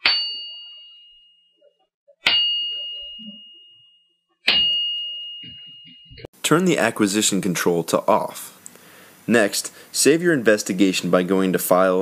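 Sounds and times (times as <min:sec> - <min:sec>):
metal part struck ringing: 0:00.0 - 0:01.3, 0:02.2 - 0:06.3.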